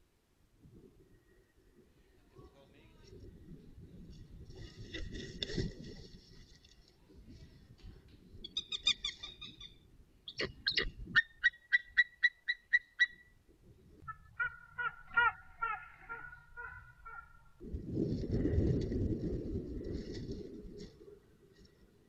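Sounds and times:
eagles calling: 0:14.0 - 0:17.6.

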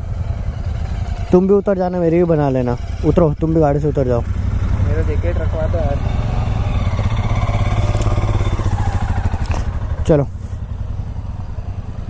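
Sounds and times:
motorcycle engines running: 0:00.0 - 0:12.0.

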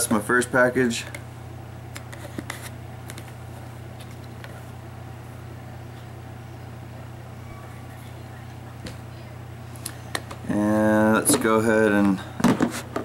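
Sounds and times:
low background hum: 0:00.0 - 0:13.0.

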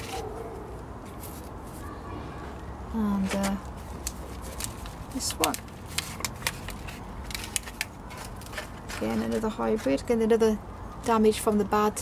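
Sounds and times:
plastic plant pot clicks and crackles: 0:03.2 - 0:10.1.

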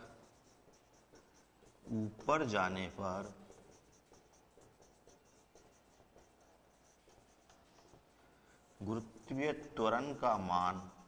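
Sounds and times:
marker strokes on a whiteboard: 0:00.0 - 0:11.0.

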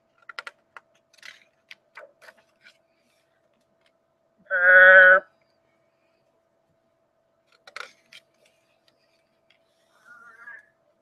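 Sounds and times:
book page turning: 0:00.2 - 0:03.2.

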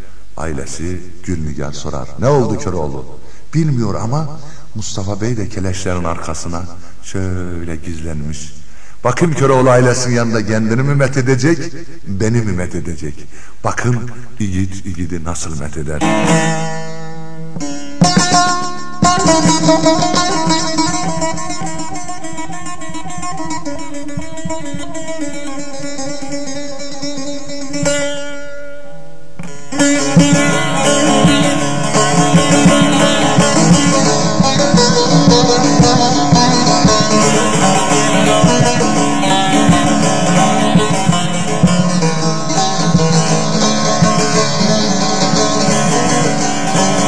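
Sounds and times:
plucked long-necked lute: 0:16.0 - 0:47.0.

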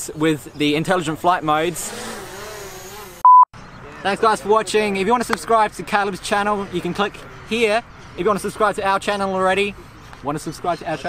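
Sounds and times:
short electronic beep: 0:03.2 - 0:03.5.

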